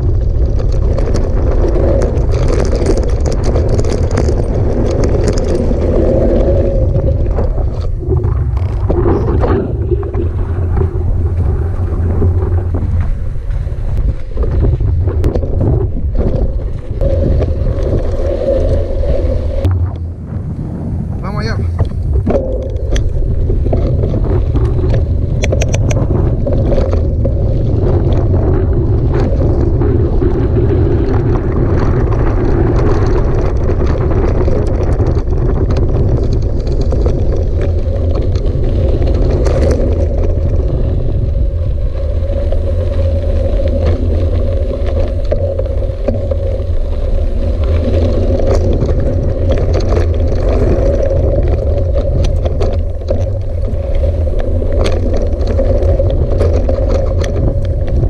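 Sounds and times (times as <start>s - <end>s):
bike rattling over gravel: 0.0s - 58.0s
wind buffeting microphone: 0.0s - 58.0s.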